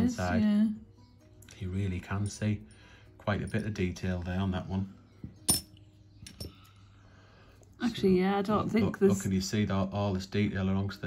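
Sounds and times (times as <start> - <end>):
metallic clink of coins: 5.5 - 6.5.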